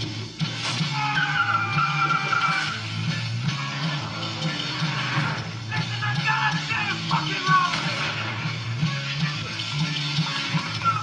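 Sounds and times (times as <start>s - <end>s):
music with pulsing low beat: 0.0s - 11.0s.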